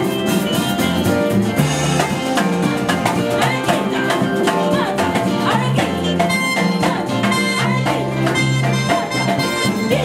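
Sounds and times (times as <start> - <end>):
worship band playing: 0.0 - 10.0
woman singing: 3.1 - 10.0.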